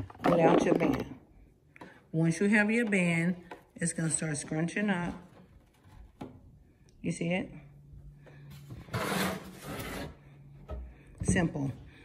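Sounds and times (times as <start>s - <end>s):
mannequin rubbing and scraping: 8.8s - 10.2s.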